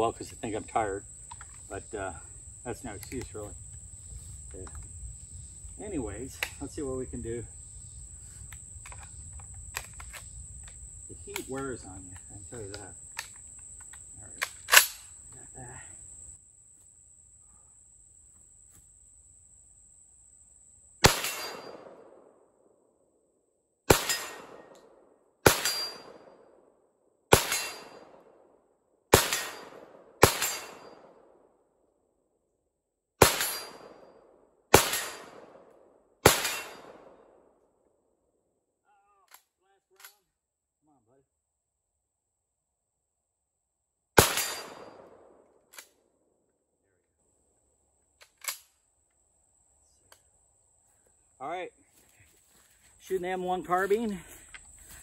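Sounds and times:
high insect buzz: 0.2 - 21.1
rifle shots with echo: 21.0 - 22.3, 23.9 - 26.3, 27.3 - 28.3, 29.1 - 31.4, 33.2 - 34.0, 34.7 - 37.4, 44.2 - 45.4.

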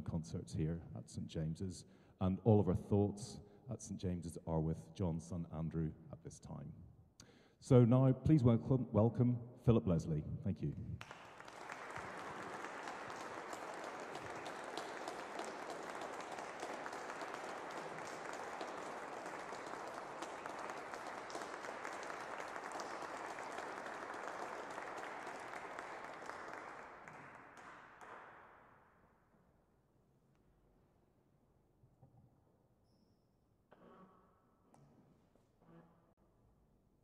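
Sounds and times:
audience applauding: 11.0 - 28.5.

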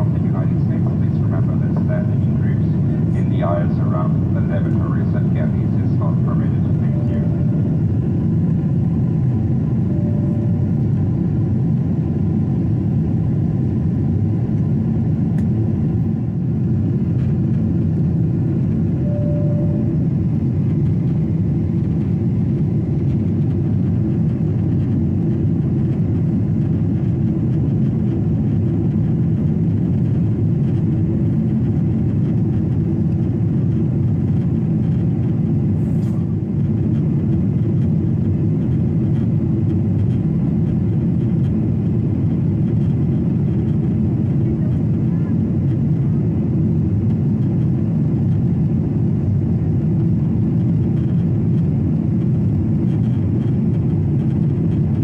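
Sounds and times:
airplane cabin engine noise: 0.0 - 55.0.

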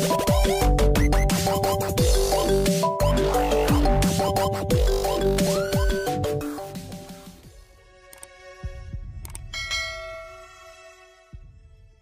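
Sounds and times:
bright bell chime: 9.6 - 10.6.

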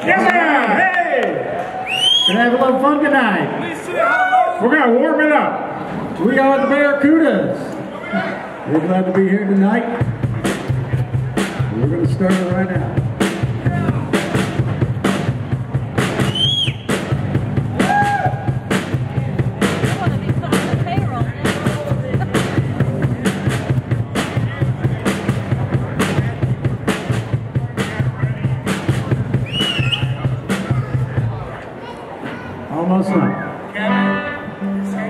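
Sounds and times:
live rock band playing: 10.0 - 31.3, 33.3 - 35.0
drum kit beat: 10.0 - 31.5.

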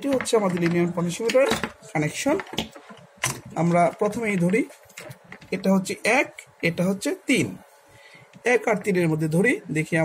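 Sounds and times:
man talking: 0.0 - 2.5, 3.5 - 4.8, 5.5 - 7.6, 8.4 - 10.0.

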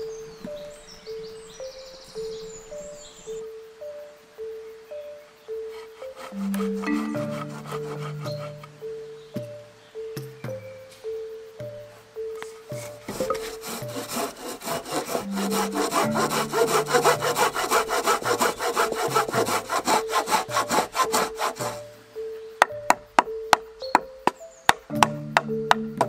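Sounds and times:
background music with held notes: 0.0 - 26.0
hand saw cutting wood: 5.7 - 8.7, 13.1 - 21.9
knife chopping wood: 24.7 - 26.0.

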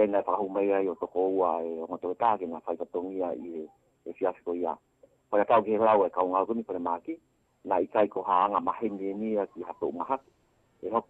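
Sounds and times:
narrator reading news: 0.0 - 10.2.

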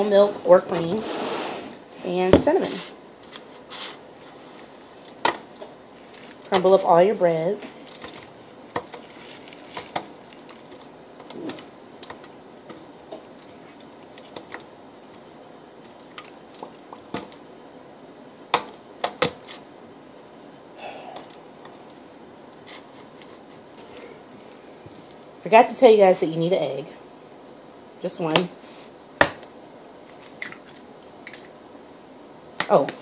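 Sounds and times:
bread tearing and rustling: 3.2 - 6.8, 7.6 - 17.5, 30.0 - 31.6.

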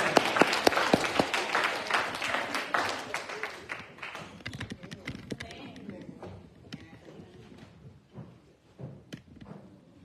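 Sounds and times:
congregation applauding: 0.0 - 4.5.

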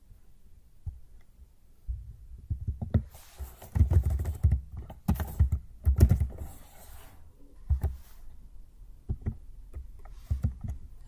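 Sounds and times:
computer keyboard typing: 3.7 - 6.4.

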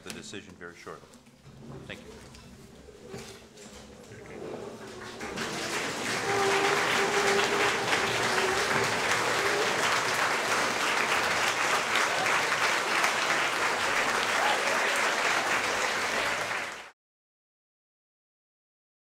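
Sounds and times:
audience applauding: 3.1 - 17.0.

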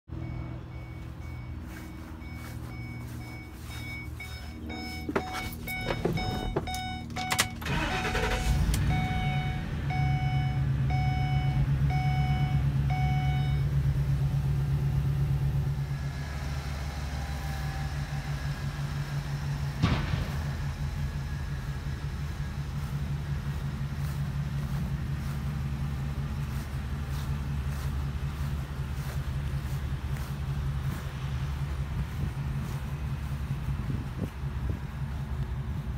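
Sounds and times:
dashboard warning chime beeping: 0.1 - 13.8
truck engine idling: 0.1 - 35.9
truck engine cranking and starting: 0.2 - 35.9.

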